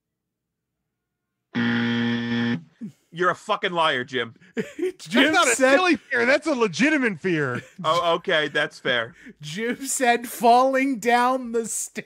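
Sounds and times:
wrong-answer buzzer: 1.5s - 2.8s.

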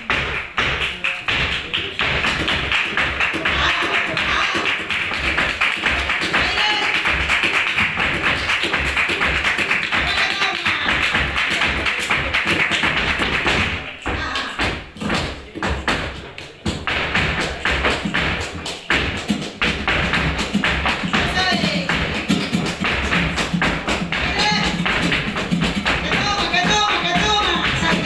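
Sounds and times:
dancer's shoes striking stage floor: 0.0s - 28.0s
flamenco guitar: 0.0s - 28.0s
people clapping rhythm: 0.0s - 28.0s.

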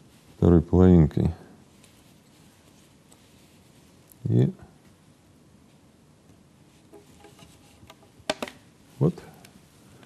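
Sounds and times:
plastic pipe fitting clicks: 7.8s - 8.6s.

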